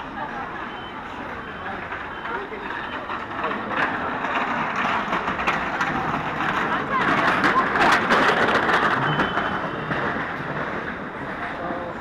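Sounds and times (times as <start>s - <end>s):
indistinct chatter of passers-by: 0.0s - 12.0s
street noise: 0.0s - 12.0s.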